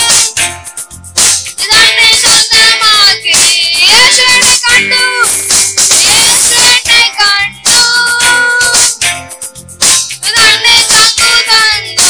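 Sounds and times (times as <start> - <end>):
electronic keyboard beat: 0.0 - 12.0
boys singing: 1.6 - 8.9, 10.2 - 12.0.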